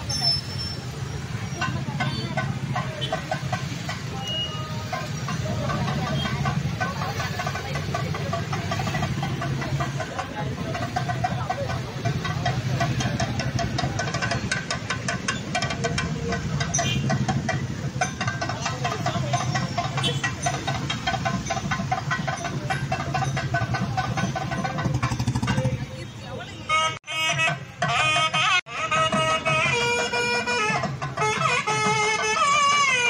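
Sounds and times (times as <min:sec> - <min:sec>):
motorcycle engines in traffic: 0:00.0 - 0:33.0.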